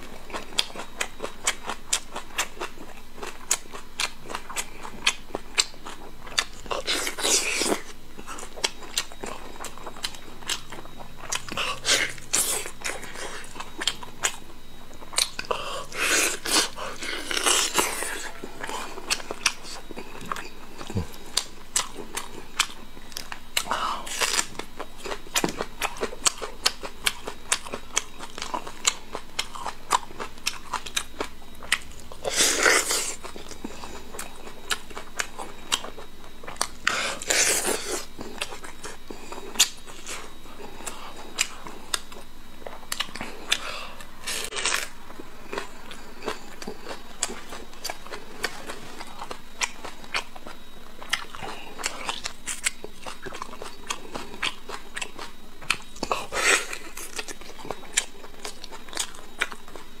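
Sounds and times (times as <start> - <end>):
chewing soft meat: 0.0 - 60.0.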